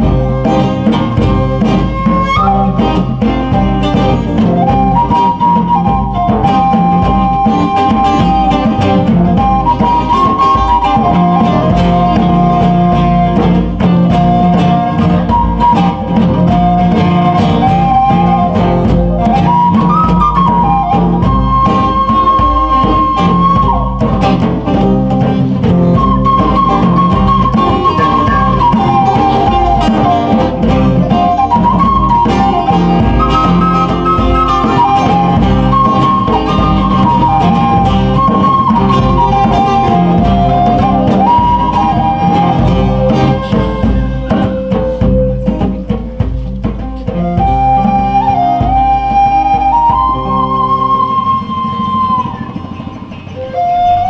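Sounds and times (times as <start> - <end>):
acoustic guitar: 0.0 - 54.0
djembe drumming: 0.0 - 54.0
flute melody: 0.0 - 54.0.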